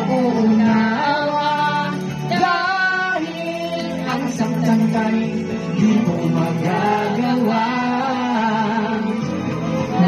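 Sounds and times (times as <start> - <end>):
woman singing into microphone: 0.0 - 5.0
faint instrumental accompaniment: 0.0 - 10.0.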